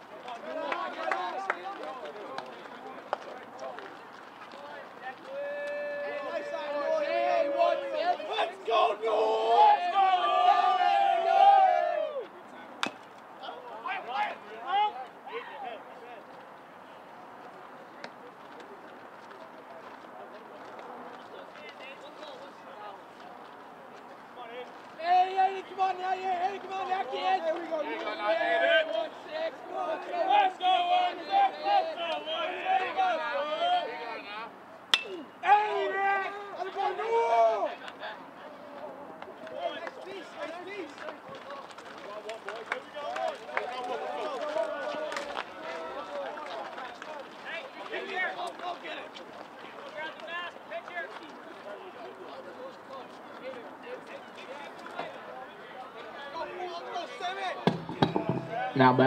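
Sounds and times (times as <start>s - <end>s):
people shouting on a field: 5.1s - 12.4s, 13.4s - 15.9s, 25.0s - 37.9s
distant murmur: 57.5s - 59.0s.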